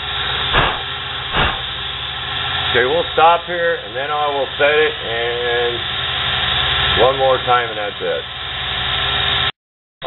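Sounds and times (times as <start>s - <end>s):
lathe motor humming: 0.0s - 2.9s, 3.8s - 9.5s
short noisy bursts: 0.5s - 1.8s.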